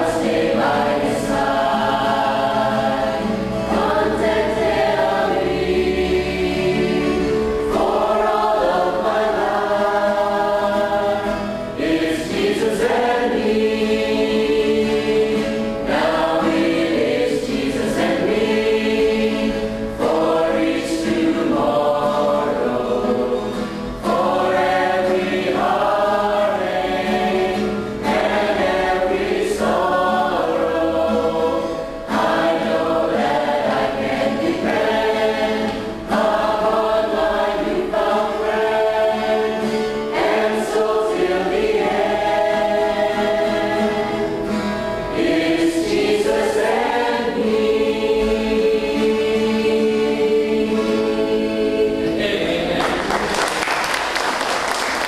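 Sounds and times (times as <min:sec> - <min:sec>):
church choir singing: 0:00.0 - 0:55.0.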